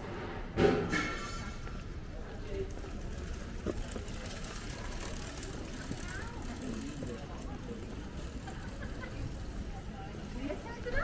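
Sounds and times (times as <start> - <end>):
faint voices of passers-by: 0.0 - 11.0.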